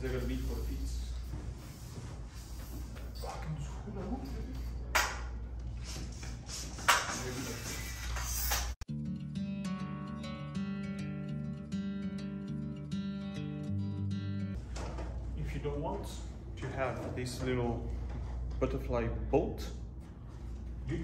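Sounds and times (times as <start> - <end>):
plucked guitar music: 8.9 - 14.6.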